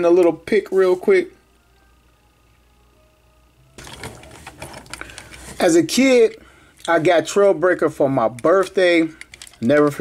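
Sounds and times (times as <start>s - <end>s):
toy truck clicks and rattles: 9.2s - 9.8s.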